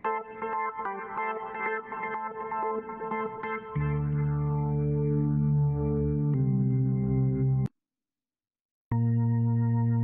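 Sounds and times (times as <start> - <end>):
held organ chord with bass notes: 3.6 - 7.7, 8.9 - 10.0.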